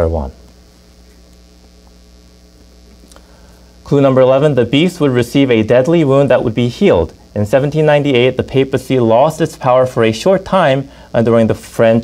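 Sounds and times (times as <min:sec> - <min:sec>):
faint electrical mains hum: 0:00.0 - 0:12.0
man's voice: 0:03.9 - 0:12.0.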